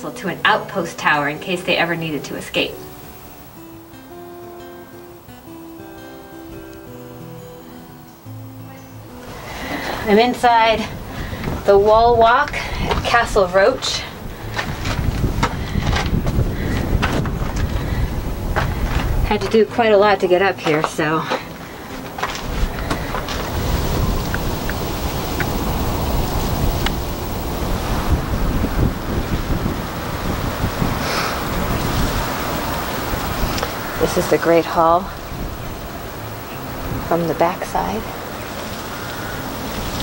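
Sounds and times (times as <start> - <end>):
wind buffeting microphone: 9.3 - 40.0
footsteps on stone: 11.1 - 24.8.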